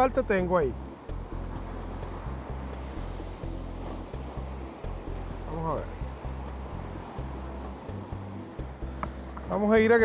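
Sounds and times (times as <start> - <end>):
light ticking percussion: 0.0 - 10.0.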